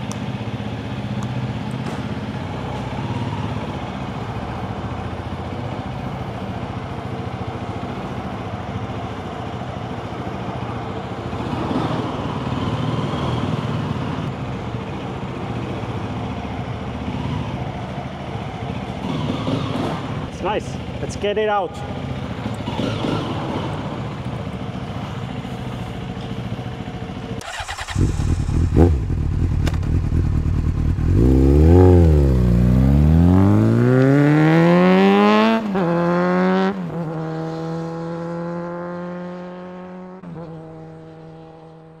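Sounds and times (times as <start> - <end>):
motorcycle engine idling and pulling away: 0.0 - 42.0.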